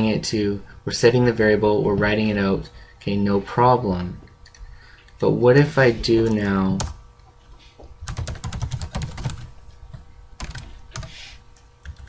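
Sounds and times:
typing on computer keyboard: 0:08.0 - 0:09.5, 0:10.4 - 0:11.1.

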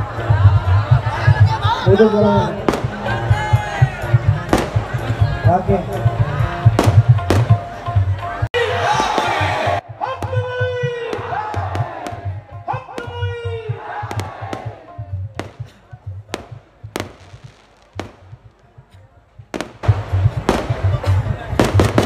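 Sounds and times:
sharp cracks: 0:16.3 - 0:18.6, 0:19.6 - 0:21.0, 0:21.6 - 0:22.0.

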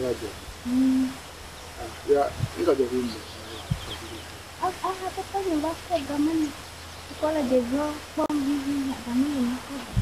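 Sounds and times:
woman speaking: 0:00.7 - 0:01.2, 0:04.6 - 0:10.0.

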